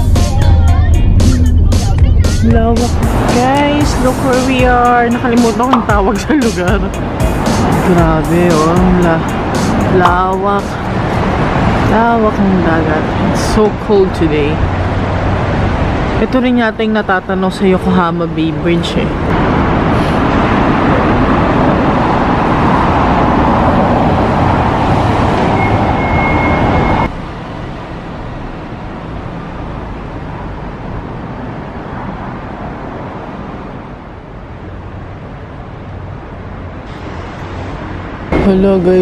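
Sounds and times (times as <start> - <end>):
road traffic: 0.0 - 39.0
wind: 0.0 - 39.0.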